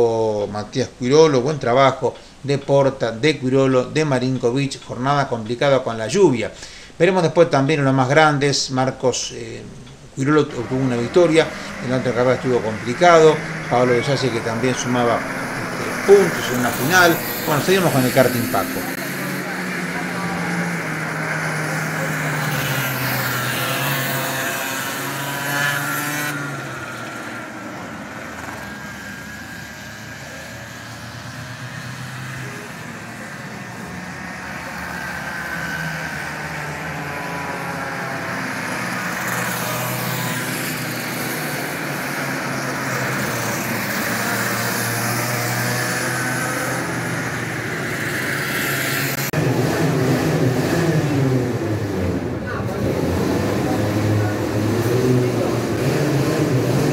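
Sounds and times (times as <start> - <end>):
kart engines passing: 0.0 - 56.9.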